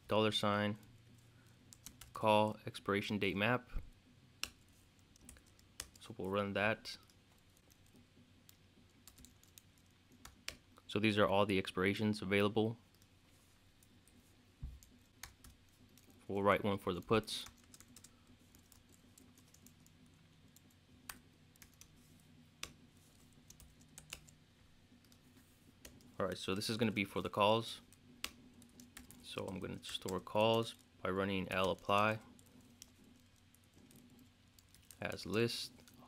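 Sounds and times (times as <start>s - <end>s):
keyboard typing: 1.1s - 2.2s, 7.0s - 10.6s, 17.0s - 21.9s, 22.6s - 24.4s, 27.9s - 36.0s
computer keyboard keystroke: 7.6s - 10.6s, 23.5s - 24.3s, 31.5s - 35.0s.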